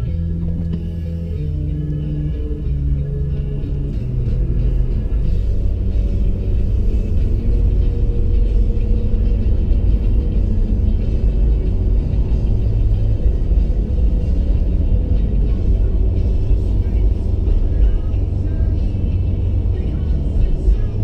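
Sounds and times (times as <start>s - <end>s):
car driving rumble from inside: 0.0s - 21.0s
music playing: 0.0s - 21.0s.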